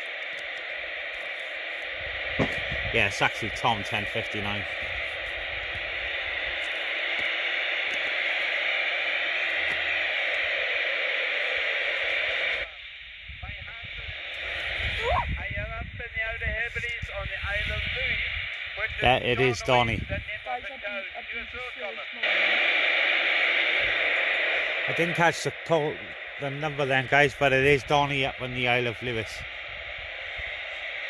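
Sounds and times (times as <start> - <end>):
radio static hiss: 0.0 - 31.0
person speaking over radio: 2.9 - 4.9, 12.6 - 22.4, 24.6 - 29.5.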